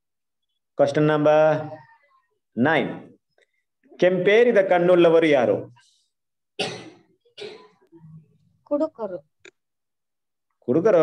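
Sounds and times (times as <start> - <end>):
person coughing: 6.6 - 7.8.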